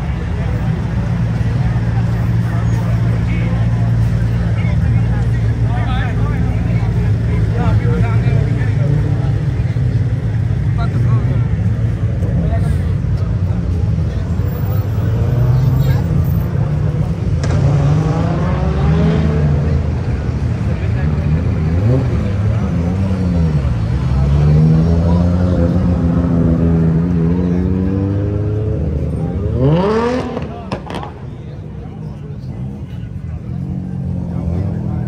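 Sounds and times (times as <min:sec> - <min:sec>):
cars driving past: 0:00.0 - 0:35.0
car engine revving: 0:14.9 - 0:31.3.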